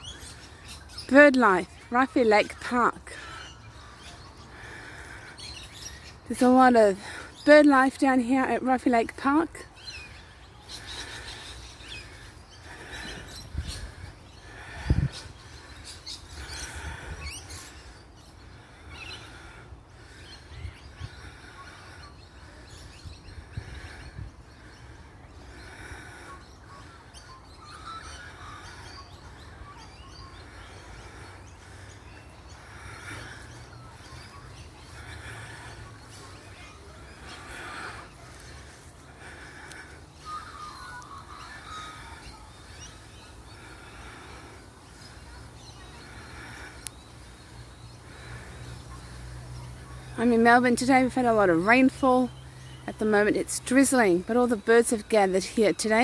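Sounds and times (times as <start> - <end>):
birds harsh calls: 0.0 - 56.0.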